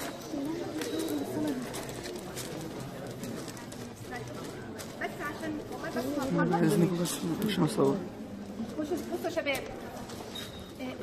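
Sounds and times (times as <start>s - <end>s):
murmur of crowd voices: 0.0s - 11.0s
pigeon cooing: 0.1s - 1.9s.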